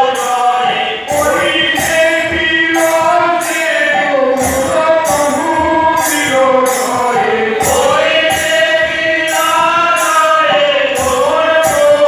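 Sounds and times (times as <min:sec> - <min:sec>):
group singing: 0:00.0 - 0:12.0
jingling percussion beat: 0:00.0 - 0:12.0.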